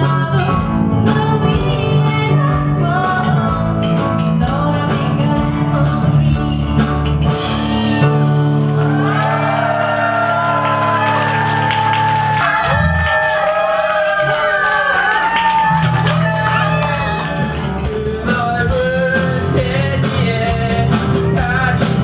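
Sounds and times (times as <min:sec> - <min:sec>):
woman singing: 0:00.0 - 0:06.9
live band music: 0:00.0 - 0:22.0
audience clapping along: 0:08.2 - 0:17.8
audience calling out: 0:08.8 - 0:17.9.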